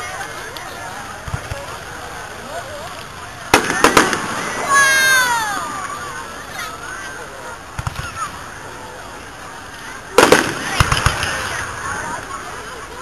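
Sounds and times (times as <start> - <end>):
fireworks bangs: 1.1 - 2.3, 3.5 - 6.2, 7.7 - 8.4, 10.1 - 12.4.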